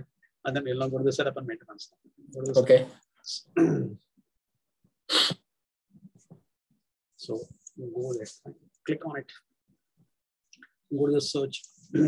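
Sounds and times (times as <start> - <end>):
person sneezing: 5.1 - 5.5.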